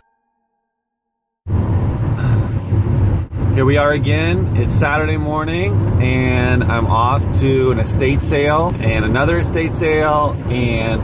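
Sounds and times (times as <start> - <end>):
car cabin road and engine rumble: 1.5 - 11.0.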